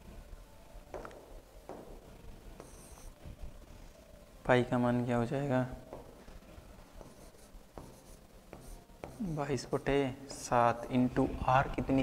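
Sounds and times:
stylus scratching on screen: 0:02.5 - 0:03.9, 0:06.2 - 0:10.4.

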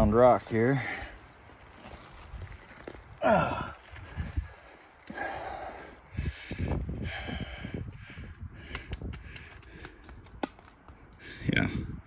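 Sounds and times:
rock tumbling down stones: 0:09.4 - 0:11.0.

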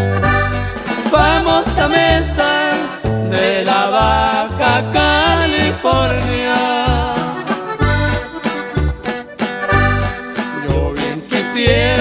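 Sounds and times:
bass line: 0:00.0 - 0:12.0
button accordion melody: 0:00.0 - 0:12.0
strummed guitar: 0:00.0 - 0:12.0.

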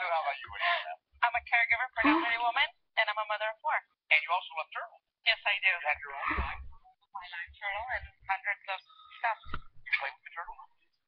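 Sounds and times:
person talking: 0:00.0 - 0:02.6, 0:05.3 - 0:10.7.

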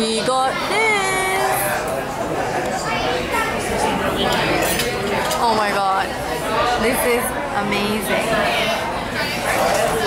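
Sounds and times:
restaurant voices: 0:00.0 - 0:10.0
cutlery clinking on plates: 0:04.3 - 0:05.5.

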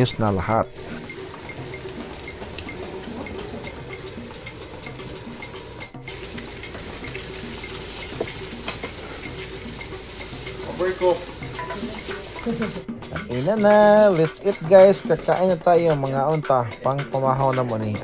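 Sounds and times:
eggs sizzling in frying pan: 0:00.0 - 0:12.8.

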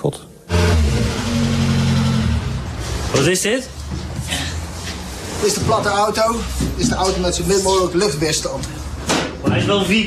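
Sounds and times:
car engine running: 0:00.5 - 0:03.0.

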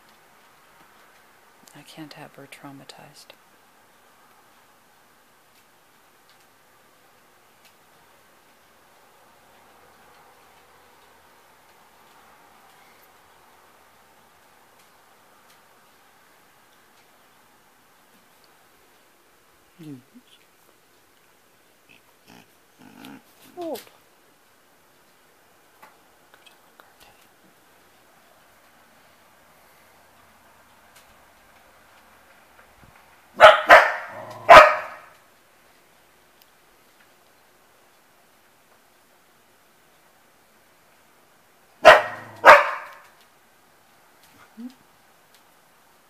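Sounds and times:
dog barking: 0:33.4 - 0:35.1, 0:41.8 - 0:43.1.

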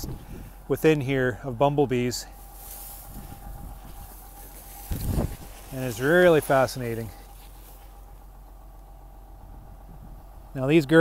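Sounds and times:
wind buffeting microphone: 0:00.0 - 0:00.7, 0:02.9 - 0:05.9.

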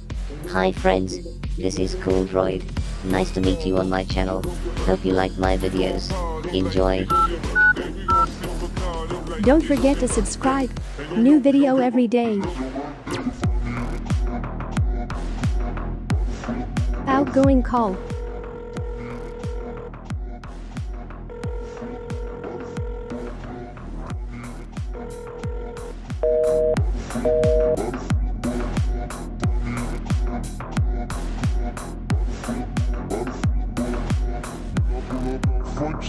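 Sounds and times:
background music: 0:00.0 - 0:20.1, 0:25.8 - 0:28.8
keypad tone beeps: 0:07.1 - 0:08.3, 0:26.2 - 0:27.8
electronic dance music: 0:26.2 - 0:27.8.

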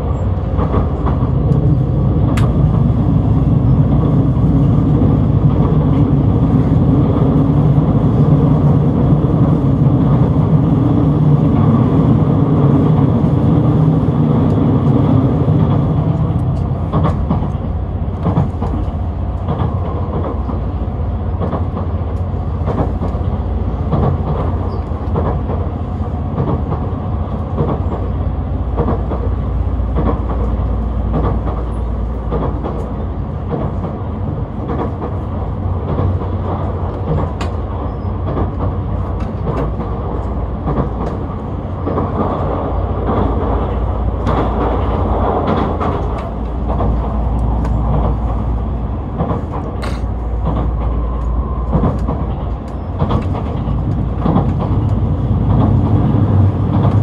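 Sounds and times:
train running drone: 0:00.0 - 0:57.0
wheels clicking over rail joints: 0:00.0 - 0:57.0.

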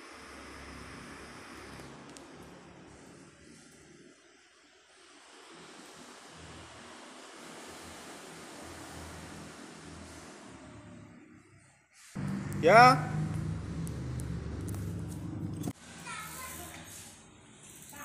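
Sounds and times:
faint rushing noise: 0:12.2 - 0:15.8.

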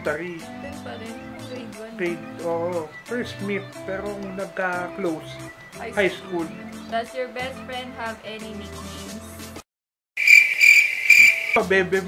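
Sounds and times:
crickets chirping: 0:10.2 - 0:11.6.

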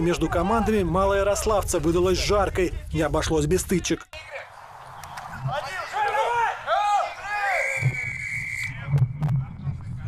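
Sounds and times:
men shouting: 0:05.5 - 0:07.8.

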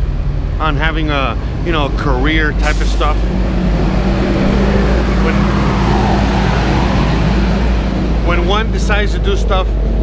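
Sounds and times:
truck engine droning: 0:00.0 - 0:10.0.

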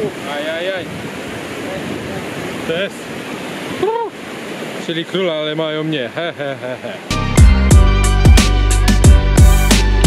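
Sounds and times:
water running over cascades: 0:00.0 - 0:07.1.

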